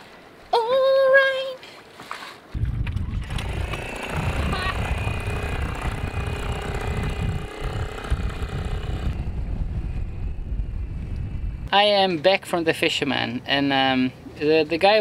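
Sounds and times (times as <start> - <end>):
outboard motor running: 2.8 - 9.3.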